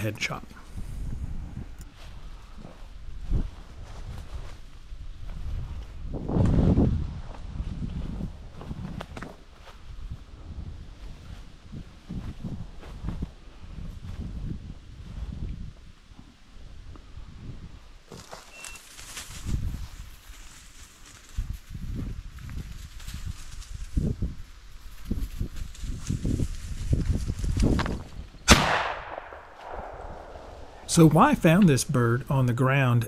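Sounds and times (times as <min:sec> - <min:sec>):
footsteps through dry leaves: 0:18.2 - 0:24.1
shotgun shot: 0:28.5 - 0:30.9.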